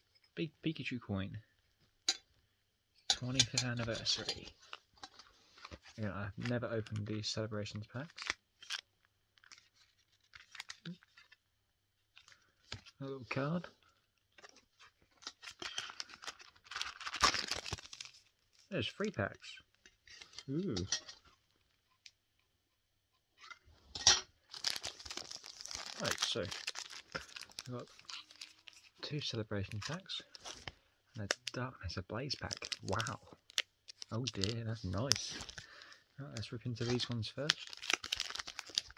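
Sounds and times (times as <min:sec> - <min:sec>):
foil wrappers crinkling: 0:07.9 - 0:11.4, 0:14.3 - 0:19.1, 0:24.4 - 0:31.6, 0:32.3 - 0:38.9.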